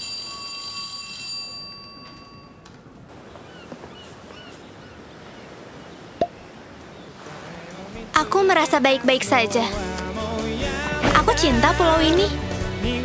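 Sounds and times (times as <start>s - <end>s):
bell ringing: 0.0s - 2.6s.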